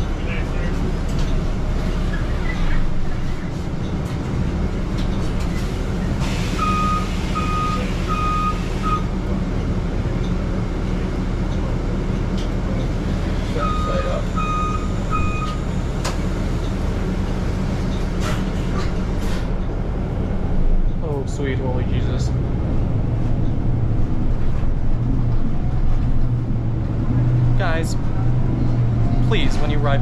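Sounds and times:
bus engine humming: 0:00.0 - 0:30.0
electronic warning beeps: 0:06.6 - 0:09.1, 0:13.6 - 0:15.6.

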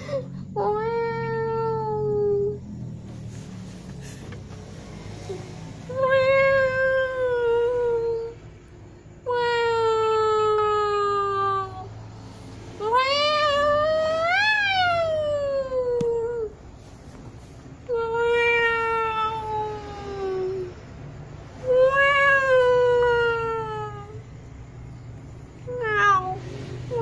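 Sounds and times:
cat meowing: 0:17.9 - 0:20.7, 0:21.6 - 0:24.2, 0:25.7 - 0:27.0.

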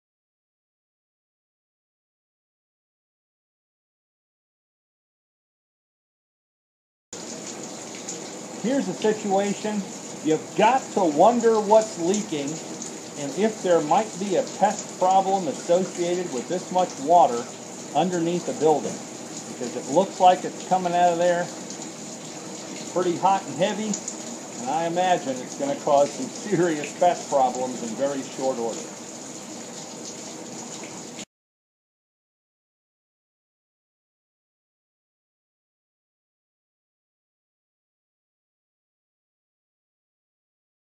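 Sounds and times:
water gushing and splashing: 0:07.2 - 0:31.2.

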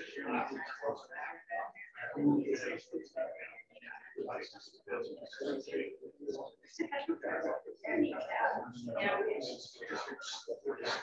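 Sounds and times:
muffled person talking: 0:00.0 - 0:11.0.

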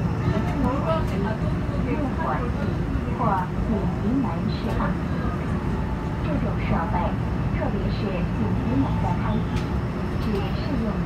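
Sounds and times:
subway train rumbling: 0:00.0 - 0:11.0
people talking: 0:00.3 - 0:05.4, 0:06.2 - 0:09.6, 0:10.2 - 0:11.0.

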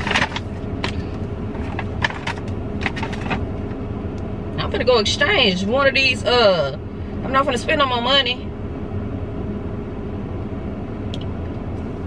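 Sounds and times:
rustling of handled things: 0:00.0 - 0:03.5
car cabin hum: 0:00.0 - 0:12.0.

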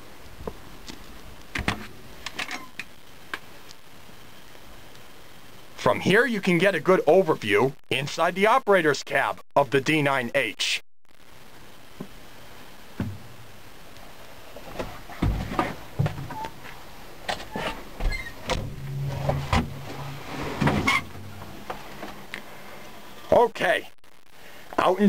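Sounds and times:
short low drone: 0:18.7 - 0:20.5.

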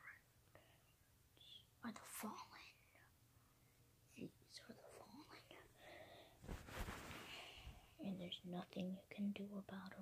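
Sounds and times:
faint whispered voice: 0:01.4 - 0:03.1, 0:04.1 - 0:05.8.

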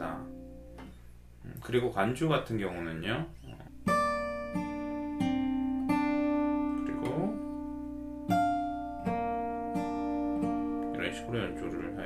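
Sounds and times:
fingerstyle acoustic guitar: 0:03.3 - 0:12.0.

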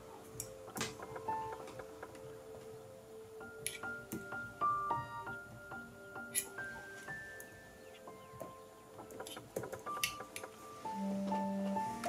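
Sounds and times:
soft piano music: 0:00.0 - 0:12.0.

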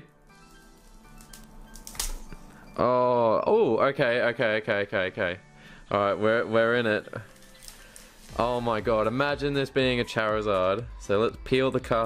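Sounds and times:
faint music with sustained notes: 0:00.0 - 0:12.0.

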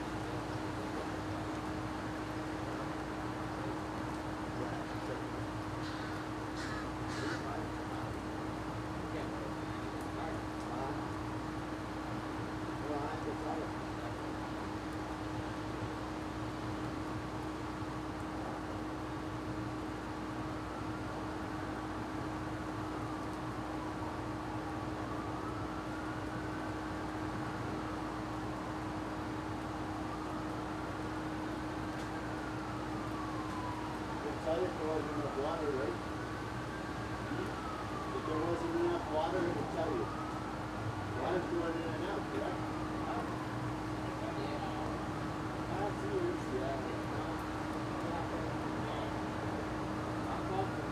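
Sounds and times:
low electrical hum: 0:00.0 - 0:50.9.

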